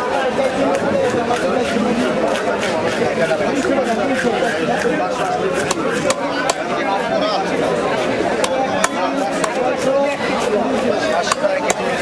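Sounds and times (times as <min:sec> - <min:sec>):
voices talking: 0:00.0 - 0:12.0
knife chopping fish on wood: 0:00.6 - 0:07.0, 0:07.9 - 0:12.0.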